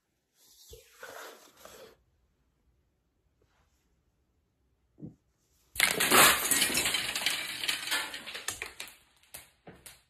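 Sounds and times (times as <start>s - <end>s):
pieces clinking: 5.8s - 9.4s.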